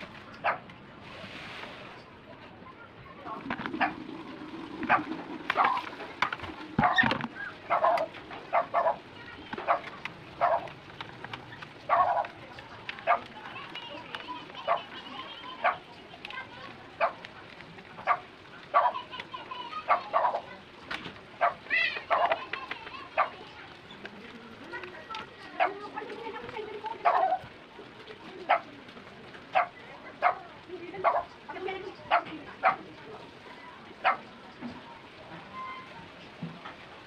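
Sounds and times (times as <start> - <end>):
dog barking: 0.4 - 0.6, 4.9 - 5.8, 6.8 - 7.1, 7.7 - 9.0, 9.6 - 10.8, 11.9 - 12.3, 13.0 - 13.3, 15.6 - 15.8, 18.0 - 19.0, 19.9 - 20.5, 21.4 - 22.4, 23.1 - 23.4, 27.0 - 27.4, 28.5 - 28.7, 29.5 - 30.4, 31.0 - 31.3, 32.1 - 32.8, 34.0 - 34.3.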